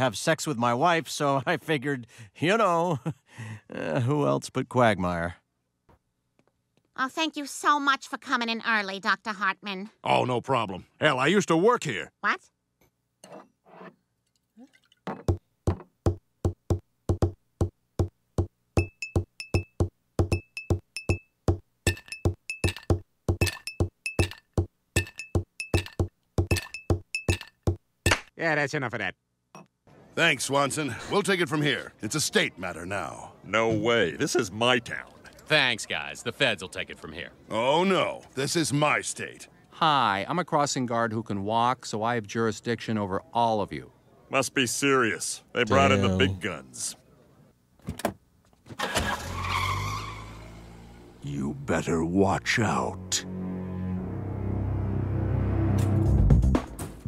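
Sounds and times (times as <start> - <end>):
rhythmic glassy clinking: 18.8 - 21.2, 21.9 - 27.8
cartoon car skidding: 48.8 - 51.2.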